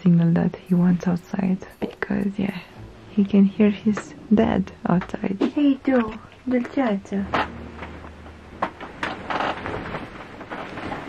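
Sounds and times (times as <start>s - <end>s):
short rustle: 8.7s - 11.0s.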